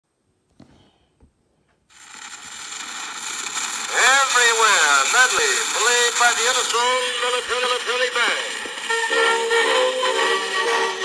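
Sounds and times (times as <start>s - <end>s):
cylinder recording hiss and crackle: 0.1s - 11.0s.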